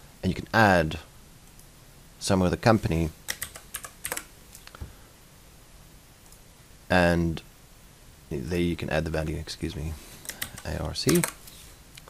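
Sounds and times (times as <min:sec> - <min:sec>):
keyboard key clicks: 0:10.3 - 0:11.4.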